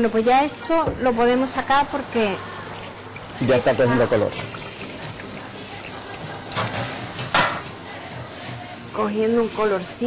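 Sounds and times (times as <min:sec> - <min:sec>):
oven dish clattering: 0:06.4 - 0:07.7.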